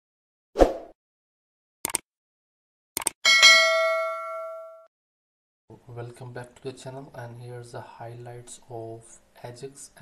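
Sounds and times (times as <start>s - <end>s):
quick clicks: 1.8s - 2.0s, 3.0s - 3.2s
bright bell ding: 3.2s - 4.9s.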